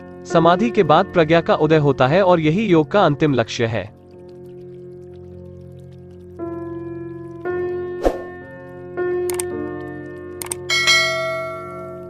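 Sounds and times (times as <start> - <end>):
mouse clicks: 9.3 - 9.5.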